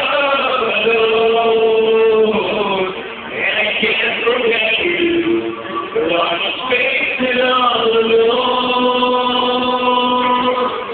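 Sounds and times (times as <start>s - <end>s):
two men singing a long note: 0.0s - 10.9s.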